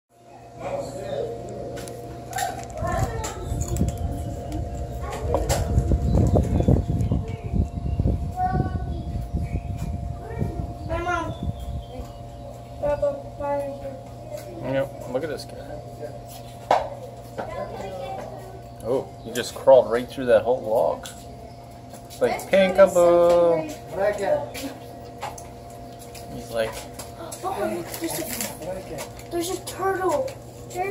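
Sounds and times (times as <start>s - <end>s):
steady hum: 0.1s - 30.9s
indistinct voices: 0.4s - 30.9s
low rumbling: 1.3s - 14.3s
people talking: 2.7s - 9.4s, 10.2s - 16.2s.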